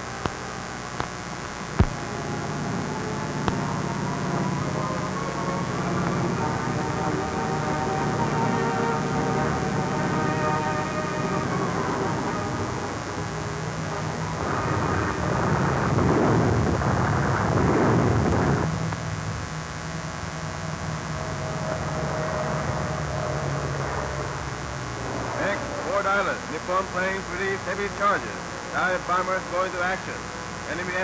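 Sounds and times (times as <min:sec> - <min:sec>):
propeller aircraft engines droning: 0:01.9 - 0:19.4, 0:20.0 - 0:31.0.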